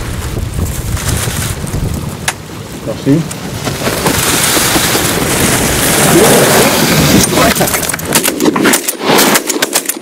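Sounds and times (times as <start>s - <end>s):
wind buffeting microphone: 0.0s - 8.6s.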